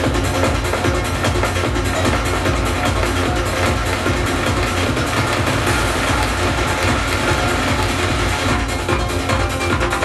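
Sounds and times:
psytrance with heavy bass: 0.0s - 10.0s.

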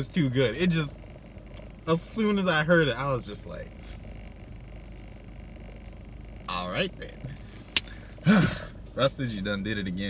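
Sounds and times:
car cabin hum and hiss: 0.0s - 10.0s.

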